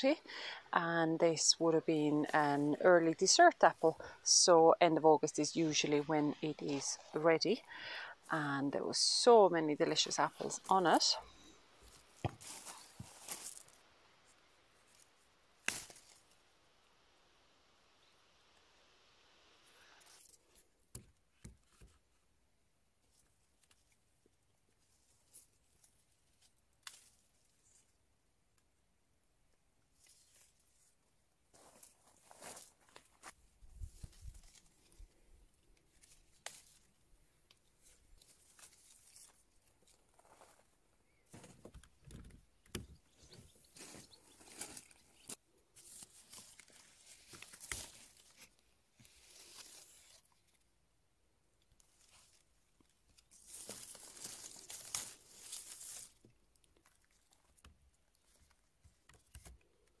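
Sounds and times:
leaves and twigs rustling: 9.8s - 16.5s, 24.7s - 28.0s, 29.9s - 41.6s, 42.9s - 50.7s, 51.8s - 58.6s.

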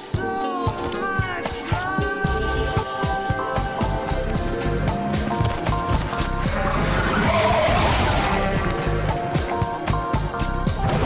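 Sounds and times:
background music: 0.0s - 11.0s
tyres screeching in a skid: 6.1s - 9.0s.

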